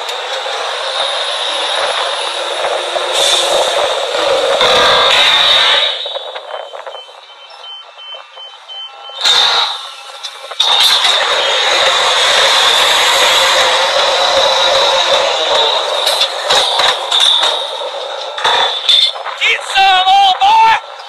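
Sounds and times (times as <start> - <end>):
rig machinery running loudly: 0.0 - 21.0
reversing alarm beeps: 6.0 - 11.8.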